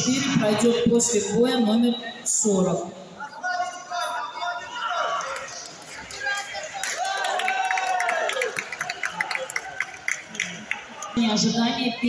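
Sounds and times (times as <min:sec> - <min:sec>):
indistinct voices and chatter: 0:00.0 - 0:12.0.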